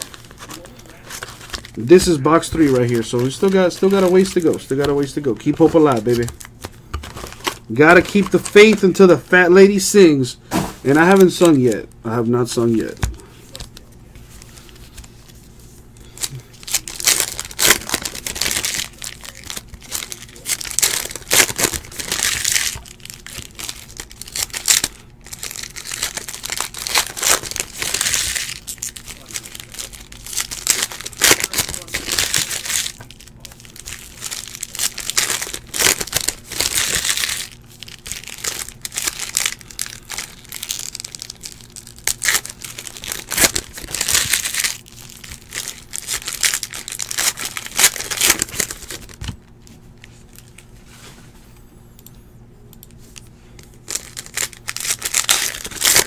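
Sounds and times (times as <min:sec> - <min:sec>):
cards riffled and flipped: 0:00.0 - 0:09.0, 0:33.8 - 0:40.5
card pack wrappers crinkling: 0:00.0 - 0:10.2, 0:10.8 - 0:50.7, 0:53.6 - 0:56.0.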